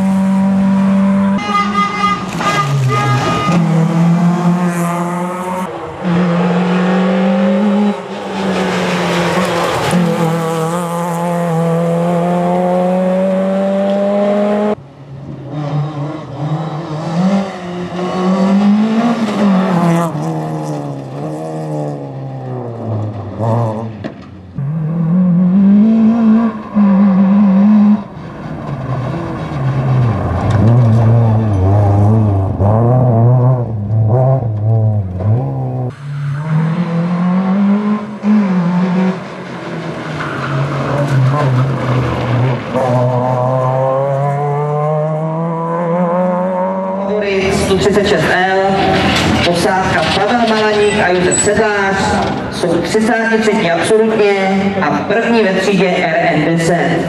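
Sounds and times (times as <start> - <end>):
rally car engine accelerating: 0.0 - 1.4, 2.3 - 57.0.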